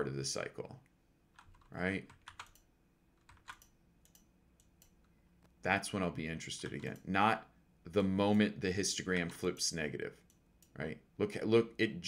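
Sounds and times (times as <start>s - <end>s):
computer keyboard clicks: 1.4s - 5.1s.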